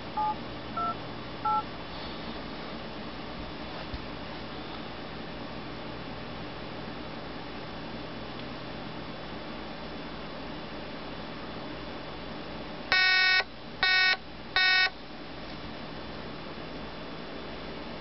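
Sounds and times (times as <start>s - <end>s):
faint room hum: 0.0s - 18.0s
electronic phone ringing: 0.2s - 1.6s, 12.9s - 14.9s.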